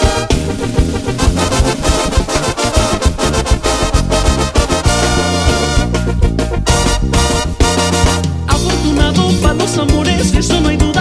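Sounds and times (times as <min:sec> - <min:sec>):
brass section playing: 0:00.0 - 0:08.6
low bass line: 0:00.0 - 0:11.0
steady drum beat: 0:00.0 - 0:11.0.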